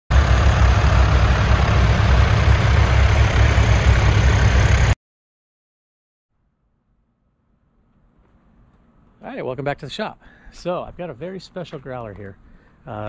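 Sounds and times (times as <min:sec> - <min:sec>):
vehicle engine rumbling: 0:00.1 - 0:05.0.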